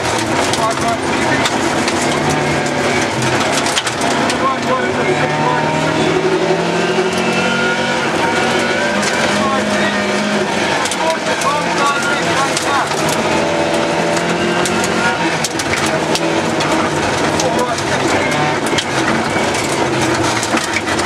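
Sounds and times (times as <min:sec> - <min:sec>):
stones clicking against car: 0:00.0 - 0:04.8, 0:08.3 - 0:21.0
gravel crunching under tyres: 0:00.0 - 0:21.0
rally car engine pulling hard: 0:00.0 - 0:21.0.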